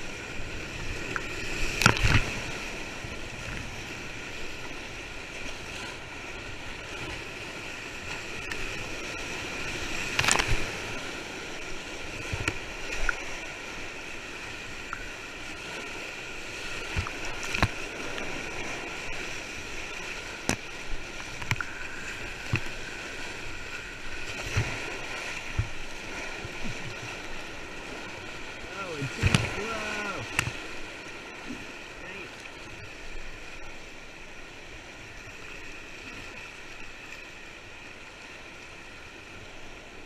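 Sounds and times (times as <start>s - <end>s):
splashes and knocks on kayak: 1.0s - 3.7s, 9.9s - 11.0s, 12.0s - 13.3s, 16.6s - 19.3s, 20.1s - 27.3s, 28.7s - 30.9s
whitewater rapids rushing: 7.6s - 34.0s.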